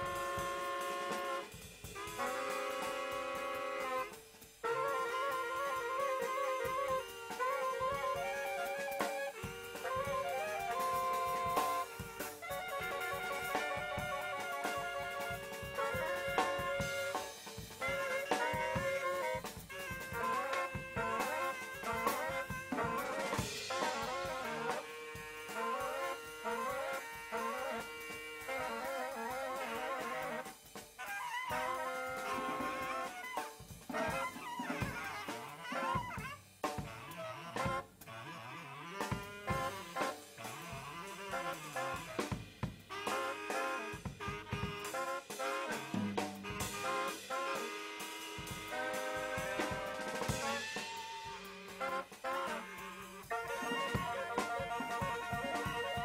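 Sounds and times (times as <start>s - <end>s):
baritone saxophone playing: 0.0s - 56.0s
drum kit with cymbals: 0.0s - 56.0s.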